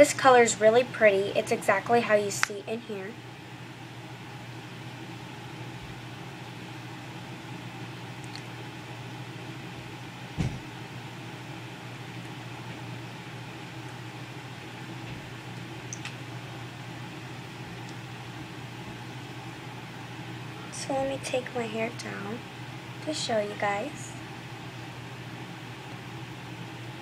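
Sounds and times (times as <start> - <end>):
low background hum: 0.0 - 27.0
knock: 10.4 - 10.6.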